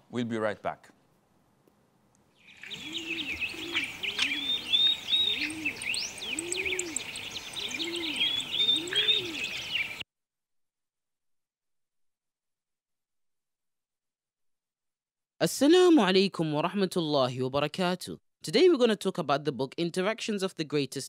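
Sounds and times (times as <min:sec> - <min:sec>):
small birds chirping: 0:02.2 - 0:10.0
dove cooing: 0:02.5 - 0:10.0.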